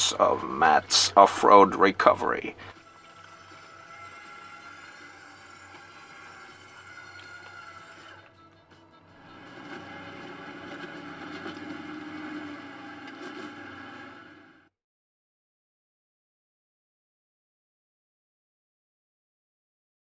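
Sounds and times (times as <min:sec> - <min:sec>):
quiet background music: 0:00.0 - 0:14.7.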